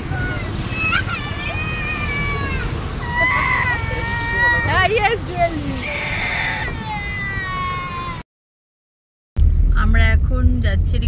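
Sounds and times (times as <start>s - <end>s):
road traffic: 0.0s - 8.2s, 9.4s - 11.0s
wind: 0.0s - 8.2s, 9.4s - 11.0s.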